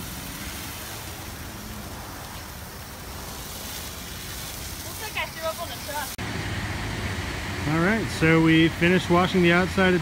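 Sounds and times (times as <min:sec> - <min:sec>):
car wash wand spraying foam: 0:00.0 - 0:06.2.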